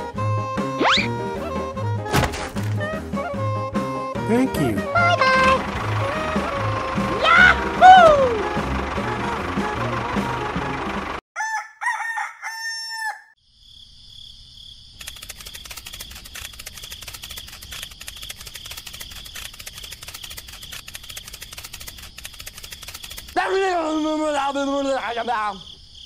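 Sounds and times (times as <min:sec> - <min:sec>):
rooster crowing: 0:11.4 - 0:13.4
crickets trilling: 0:13.4 - 0:26.0.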